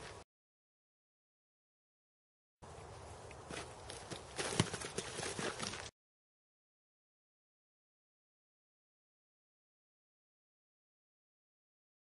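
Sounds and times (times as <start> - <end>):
feet scuffing on dirt: 3.3 - 5.9.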